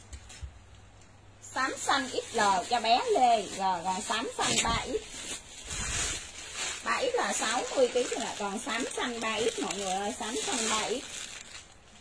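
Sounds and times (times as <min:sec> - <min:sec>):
plastic packaging crinkling: 0:01.5 - 0:12.0.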